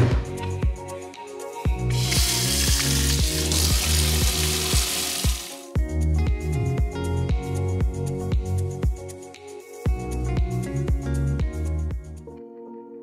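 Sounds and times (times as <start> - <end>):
background music with steady beat: 0.0 - 13.0
faucet running water into bucket: 1.9 - 5.7.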